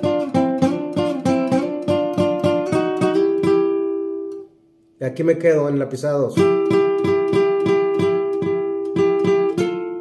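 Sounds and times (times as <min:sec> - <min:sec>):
nylon-string guitar plucking: 0:00.0 - 0:10.0.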